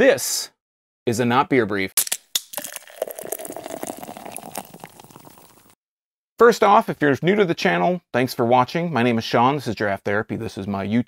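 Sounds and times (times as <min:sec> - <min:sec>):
dense crackling fizz: 0:02.6 - 0:05.8.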